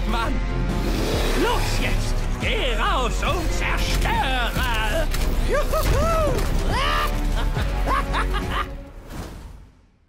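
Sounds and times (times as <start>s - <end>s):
dramatic background music: 0.0s - 10.0s
man laughing: 6.8s - 8.9s.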